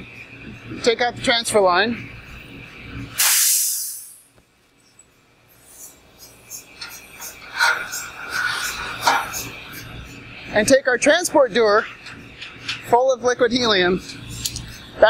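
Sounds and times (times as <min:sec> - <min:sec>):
gas hissing burst: 0:03.0 - 0:04.3.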